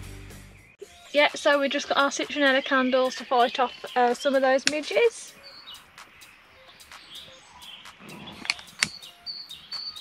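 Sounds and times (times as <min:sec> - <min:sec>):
faint bird chirps: 0:00.6 - 0:10.0.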